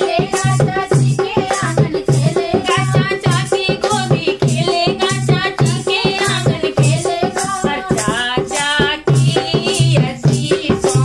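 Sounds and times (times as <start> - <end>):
dholak drum beating: 0.0 - 11.0
women singing folk song: 0.0 - 11.0.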